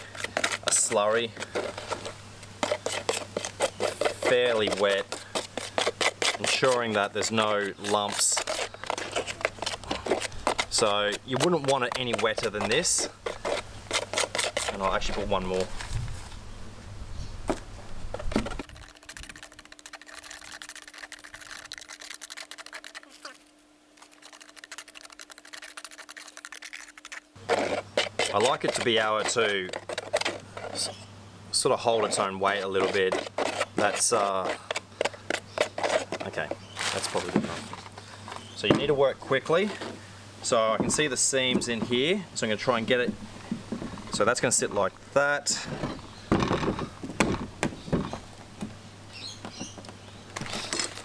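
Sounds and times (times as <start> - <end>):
stirring scrapes in plastic tub: 0.0 - 16.1, 18.1 - 31.0, 31.6 - 46.0
steady low hum: 0.0 - 51.0.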